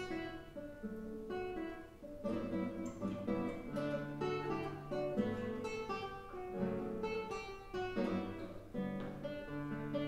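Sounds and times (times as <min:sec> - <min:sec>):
classical guitar playing: 0:00.0 - 0:10.0.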